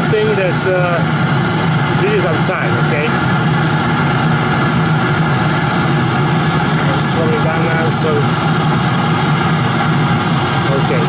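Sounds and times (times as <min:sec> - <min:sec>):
oil burner fire rumbling: 0:00.0 - 0:11.0.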